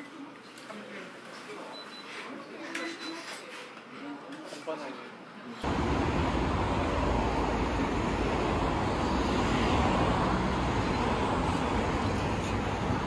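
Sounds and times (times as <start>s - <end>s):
passing cars: 5.6s - 13.0s.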